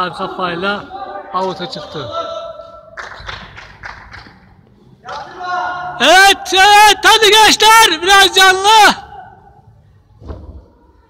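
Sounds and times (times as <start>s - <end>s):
voices echoing in hall: 0.0s - 11.0s.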